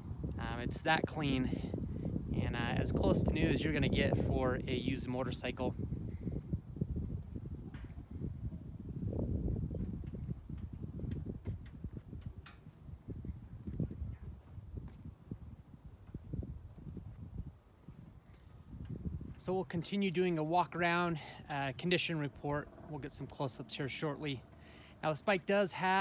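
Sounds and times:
wind rumbling on microphone: 0.0 - 26.0
footsteps on asphalt: 13.6 - 17.3.

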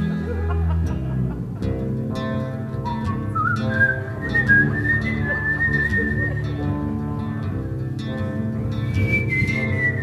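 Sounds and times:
guitar chords: 0.0 - 10.0
man whistling a melody: 2.8 - 6.7, 8.8 - 10.0.

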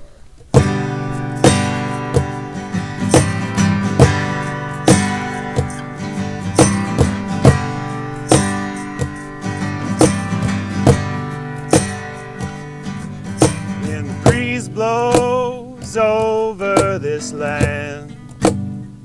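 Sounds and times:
acoustic guitars strummed: 0.4 - 19.0
man singing: 13.7 - 18.2.

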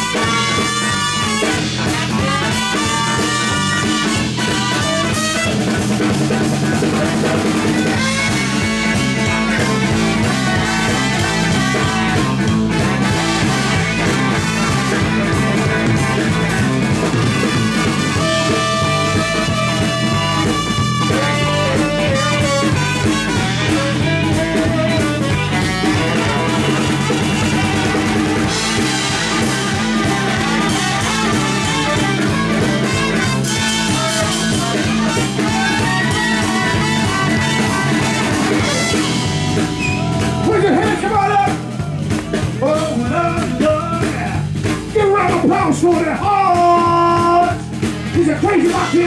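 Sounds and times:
saxophone: 0.0 - 45.0, 46.5 - 49.0
drum kit: 0.0 - 49.0
electric bass: 0.0 - 49.0
electric guitar: 0.0 - 49.0
trumpet: 0.0 - 49.0.

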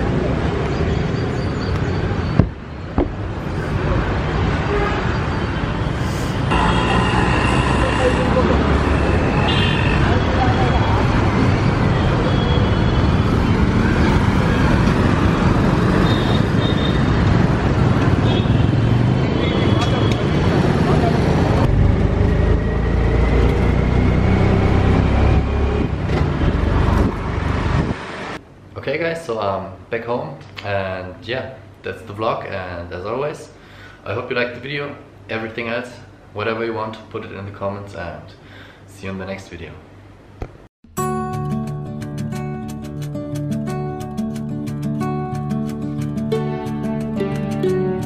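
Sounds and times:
people's voices: 6.0 - 11.1
motorbikes and scooters passing: 6.4 - 28.4.

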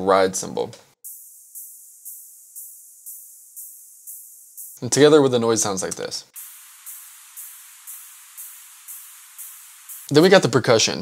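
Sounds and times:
thin steady hiss: 1.0 - 11.0.

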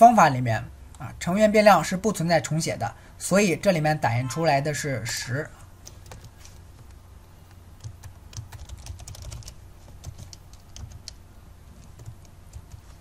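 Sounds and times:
low steady hum: 0.0 - 13.0.

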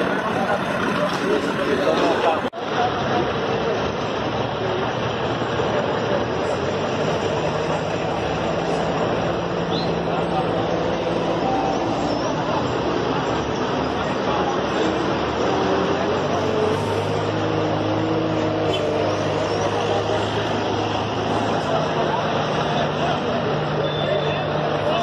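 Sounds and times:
diesel truck engines idling: 0.0 - 25.0
people talking: 0.0 - 25.0.

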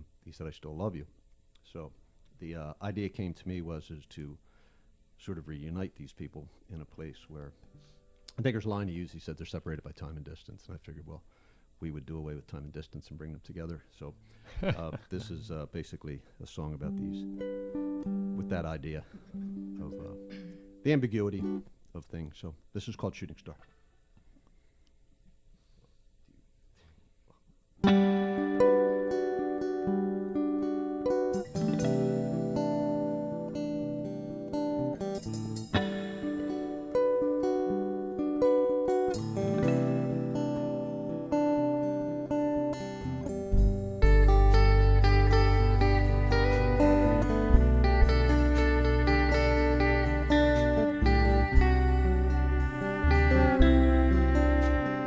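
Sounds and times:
bass guitar notes: 16.8 - 21.7, 27.8 - 55.0
guitar chords: 16.8 - 21.8, 27.8 - 55.0
electric guitar picking: 16.9 - 18.5, 19.1 - 20.8, 27.8 - 55.0.

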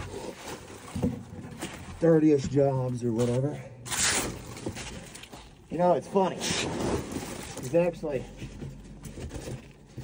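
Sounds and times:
rustling and scraping of foam chunks: 0.0 - 10.0.

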